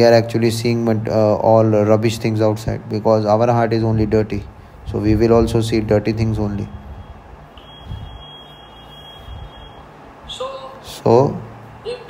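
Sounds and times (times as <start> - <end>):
low background rumble: 0.0 - 8.3
steady high-pitched tone: 6.6 - 11.1.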